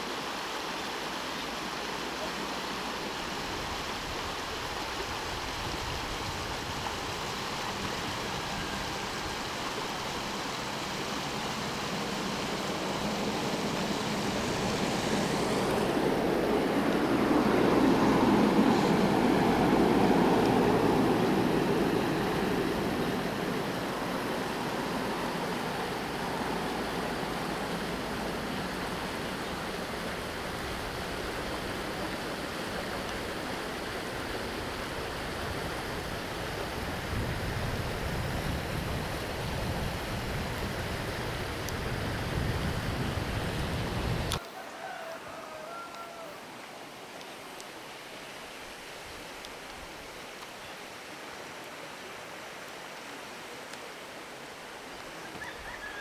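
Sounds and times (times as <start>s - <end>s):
river water running over stones: 0.0s - 55.7s.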